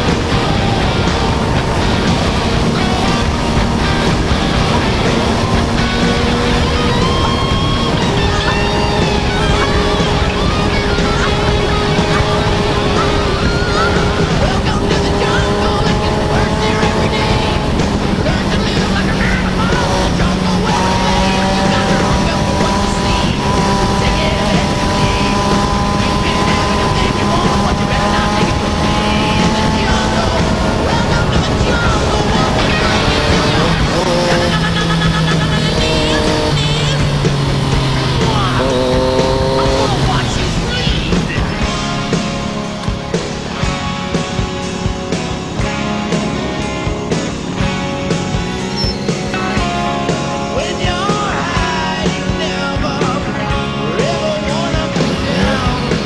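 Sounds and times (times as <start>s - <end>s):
wind rush: 0.0s - 53.8s
motorcycle engine running: 0.0s - 56.0s
music with singing: 0.0s - 56.0s.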